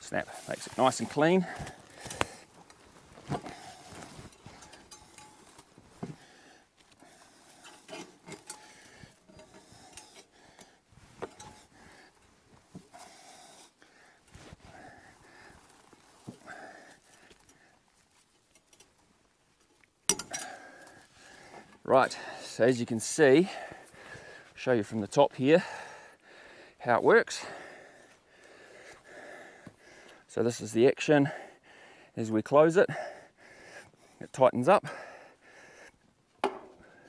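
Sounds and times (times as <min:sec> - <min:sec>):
wire netting clatter: 0:00.5 - 0:06.2, 0:07.0 - 0:13.7, 0:19.6 - 0:21.9
fencing wire clicking and rattling: 0:00.9 - 0:06.2, 0:07.0 - 0:12.2, 0:18.4 - 0:19.0, 0:19.6 - 0:21.9.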